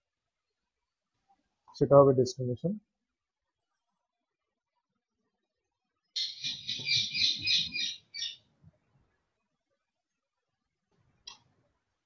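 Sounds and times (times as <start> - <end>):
bird chirping shrilly: 6.2 - 8.4.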